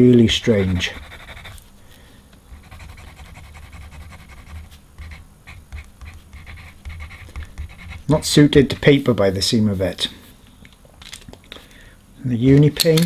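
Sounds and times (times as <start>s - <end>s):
paint marker scratching on paper: 0.4s - 1.6s, 2.6s - 8.4s.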